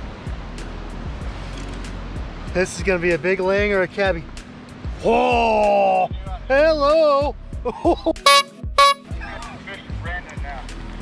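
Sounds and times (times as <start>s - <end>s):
background music: 0.0s - 11.0s
horn toots: 8.2s - 9.1s.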